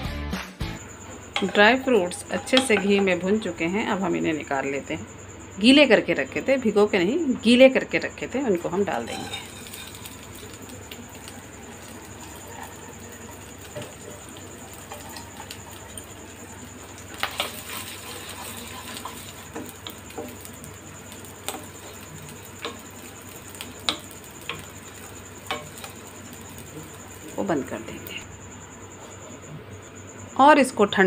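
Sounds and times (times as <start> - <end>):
rice sizzling in a pan: 0.8 - 4.0, 8.5 - 29.4
spatula knocking against pan: 1.3 - 3.2.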